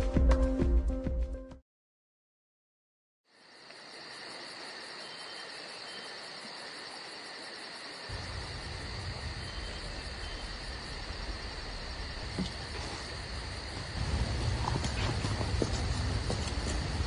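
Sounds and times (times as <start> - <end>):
insects chirring: 3.3 - 17.0
low wind rumble: 8.1 - 17.0.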